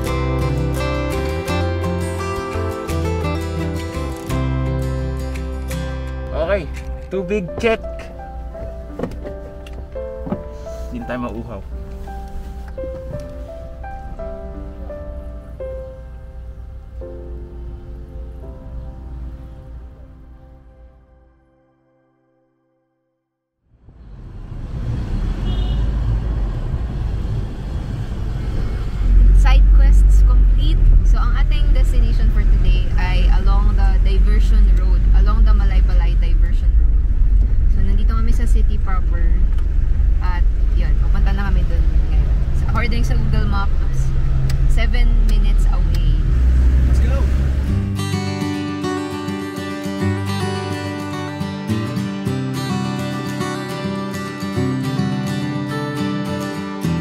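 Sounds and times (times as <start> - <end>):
strummed acoustic guitar music: 0.0 - 10.9, 47.4 - 57.0
van rumbling on the road: 0.0 - 20.8, 23.8 - 48.5.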